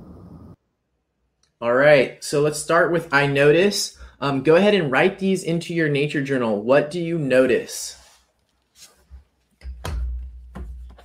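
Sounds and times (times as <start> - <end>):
low rumble: 0.0 - 0.6.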